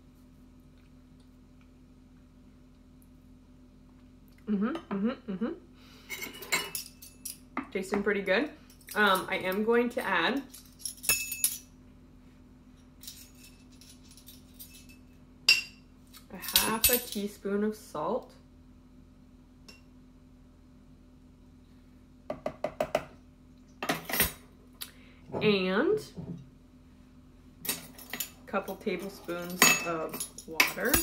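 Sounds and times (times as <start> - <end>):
utensil clinking against dish: 27.7 - 31.0.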